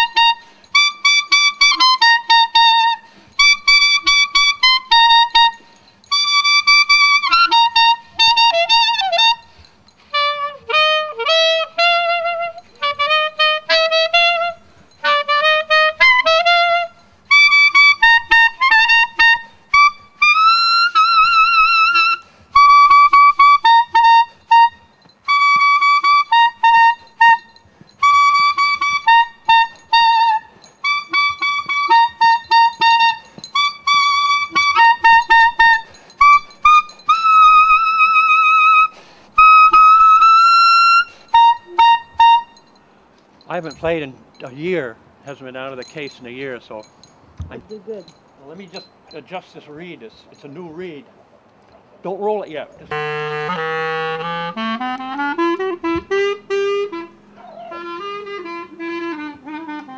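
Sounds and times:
solo clarinet melody: 0.0 - 42.8, 52.7 - 59.9.

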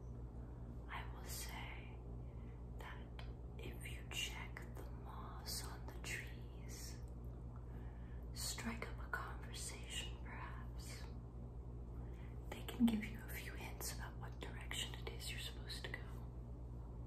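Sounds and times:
steady low hum: 0.0 - 17.0
woman whispering: 0.8 - 2.1, 2.8 - 7.1, 8.3 - 11.2, 12.4 - 16.3.

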